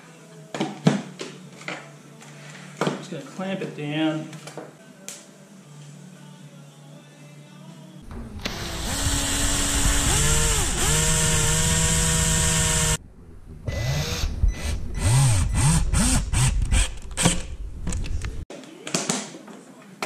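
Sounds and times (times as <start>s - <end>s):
drill driving screw in bursts: 8.4s - 13.0s
drill motor whining: 8.4s - 13.0s, 13.7s - 17.4s.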